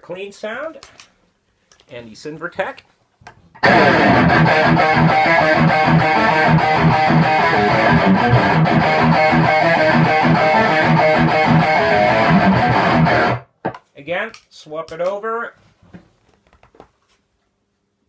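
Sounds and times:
distorted electric guitar riffing: 3.6 - 13.5.

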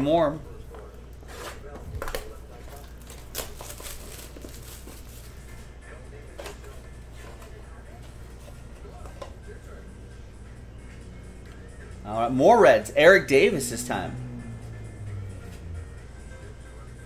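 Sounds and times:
plastic shrink wrap crinkling: 2.0 - 5.4
steady low hum: 13.6 - 17.0.

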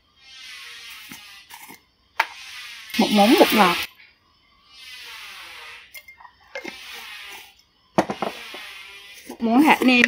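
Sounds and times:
spoon scraping in a jar: 0.9 - 3.8, 5.6 - 10.0.

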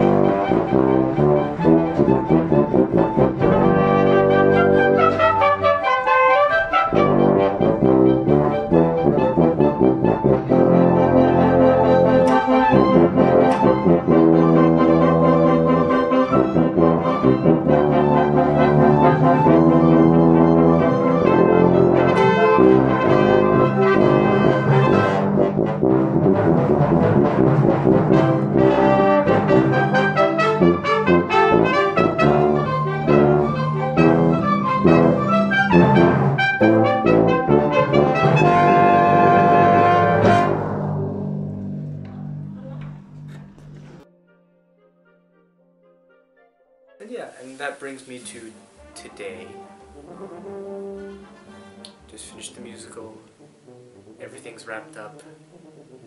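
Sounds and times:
tuba playing: 0.0 - 56.0.

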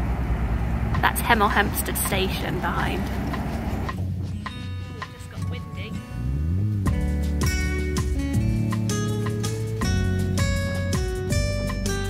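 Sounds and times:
diesel boat engine rumbling: 0.0 - 7.5
background music: 1.0 - 12.0.

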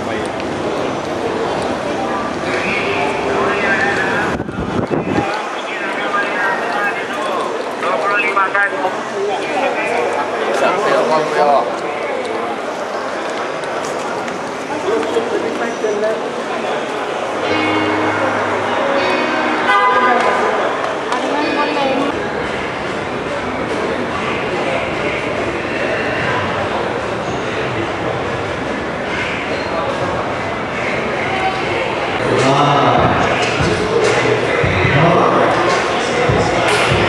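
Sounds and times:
crowd chatter: 0.0 - 37.0.

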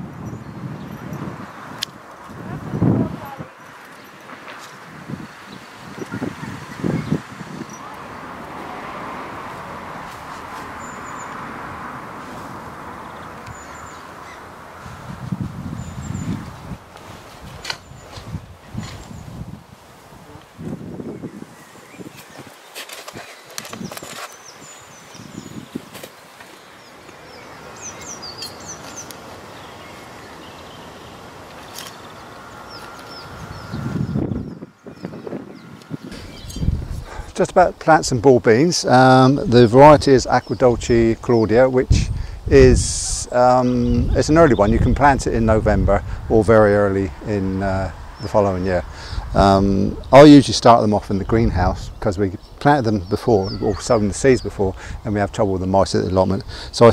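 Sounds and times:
small birds chirping: 0.0 - 19.6, 20.2 - 56.9
outdoor background noise: 0.0 - 56.9
low rumbles: 32.0 - 56.9.

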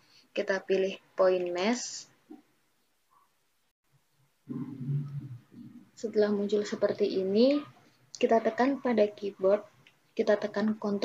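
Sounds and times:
person humming low and rough: 4.5 - 5.8.

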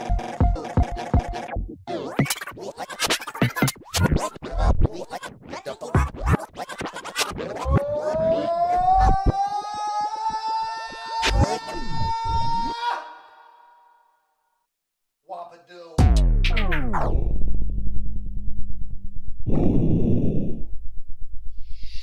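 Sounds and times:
electronic drum beat: 0.1 - 1.5.

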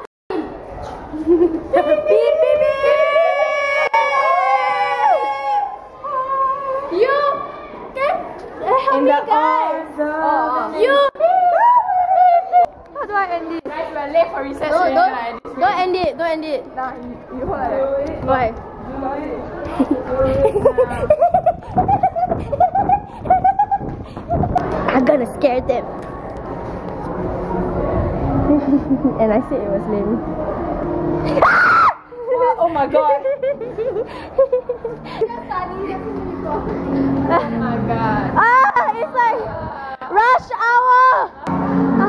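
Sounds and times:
girls shrieking: 1.8 - 7.8, 11.2 - 12.7, 31.3 - 32.3
girl giggling: 19.6 - 24.6, 28.5 - 29.2, 33.1 - 35.4.

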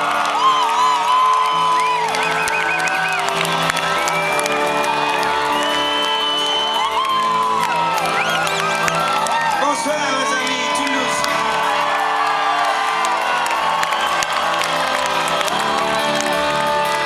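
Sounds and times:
crowd cheering and whistling: 0.0 - 17.0
live band sustained chords: 0.0 - 17.0.

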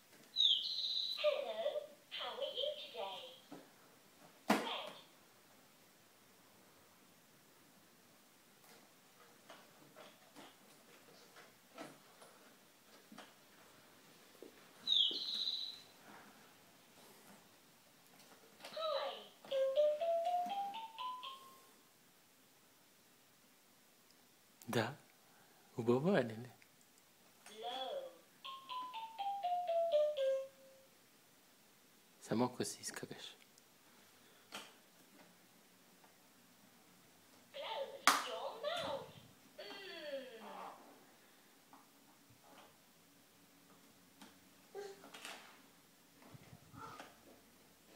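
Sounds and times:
toy playing descending chime notes: 19.5 - 21.7, 28.4 - 30.8.

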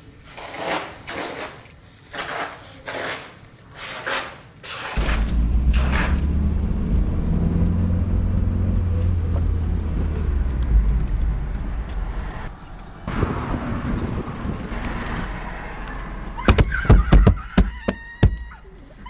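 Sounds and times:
light ticks: 5.0 - 16.4
car engine rumbling: 5.0 - 16.7.

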